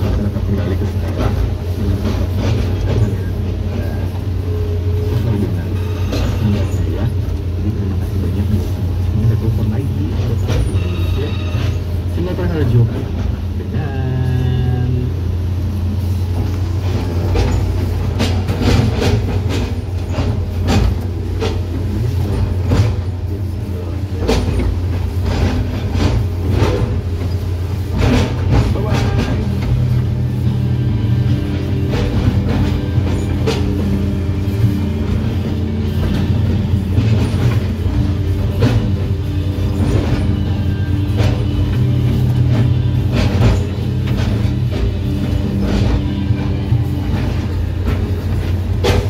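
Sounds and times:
diesel engine droning: 0.0 - 49.0
music: 13.7 - 49.0
excavator bucket knocking on trunks: 16.3 - 23.3, 24.1 - 49.0.

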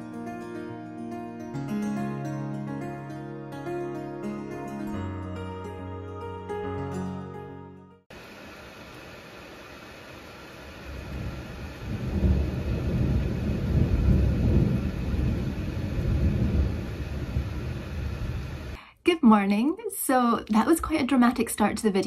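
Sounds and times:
heavy rain: 8.1 - 18.8
rolling thunder: 10.9 - 18.8.

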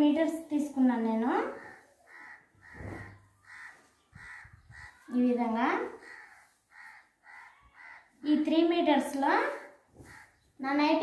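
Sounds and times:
crow cawing: 1.5 - 5.2, 5.9 - 8.2, 10.0 - 10.4.

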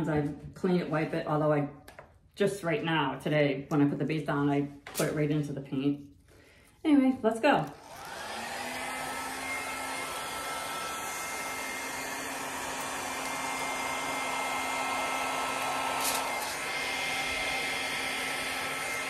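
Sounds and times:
hair dryer blowing: 7.6 - 19.0.

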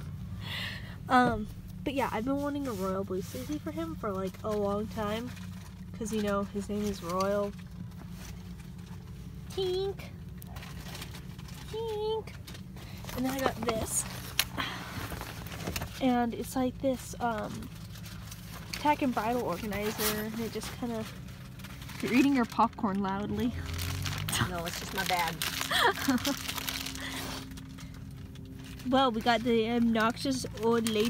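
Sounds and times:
steady low hum: 0.0 - 31.0
fabric and packaging rustling: 1.1 - 31.0
person laughing: 25.6 - 26.5.

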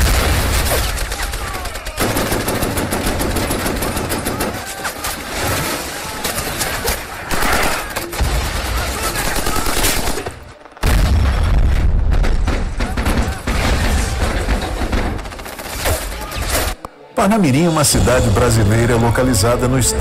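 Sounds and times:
rapid machine-gun fire: 0.0 - 5.4, 7.3 - 10.4, 12.2 - 16.1.

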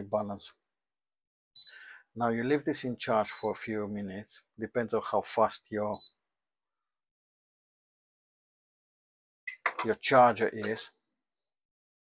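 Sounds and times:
battery charger beep: 1.6 - 1.8, 3.3 - 3.6.

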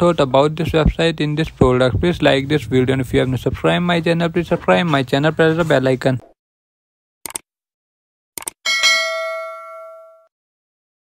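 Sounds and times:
bright notification bell ding: 8.7 - 10.3.

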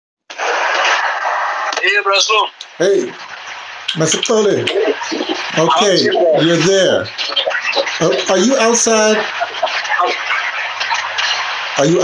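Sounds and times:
loud outdoor background noise: 0.3 - 12.0.

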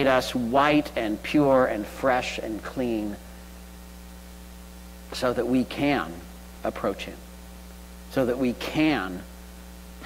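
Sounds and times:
speech: 0.0 - 3.2, 5.1 - 7.2, 8.1 - 9.3
electrical mains hum: 0.0 - 10.0.

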